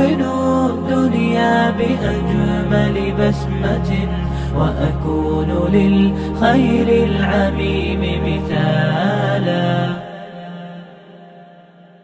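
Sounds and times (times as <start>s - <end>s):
deep drone: 0.0s - 10.0s
male voices singing a cappella: 0.0s - 10.9s.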